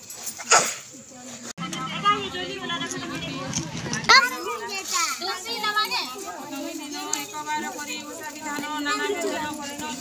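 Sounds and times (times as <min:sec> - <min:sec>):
people talking: 0:00.9 - 0:10.0.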